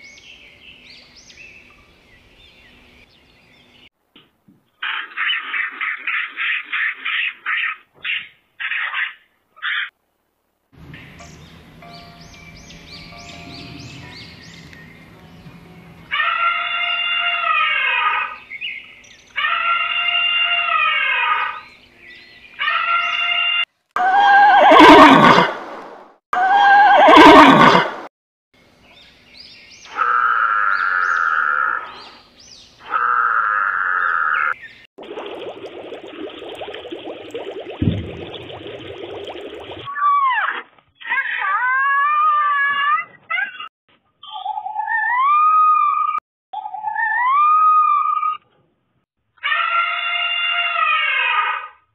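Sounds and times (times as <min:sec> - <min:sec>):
loud harsh animal calls: 0:29.9 - 0:32.0, 0:32.8 - 0:34.6, 0:49.4 - 0:51.8
repeated animal call: 0:32.8 - 0:34.6.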